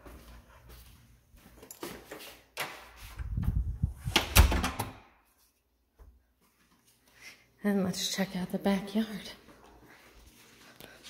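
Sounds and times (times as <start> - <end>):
loud door thud: 4.1 - 5.1.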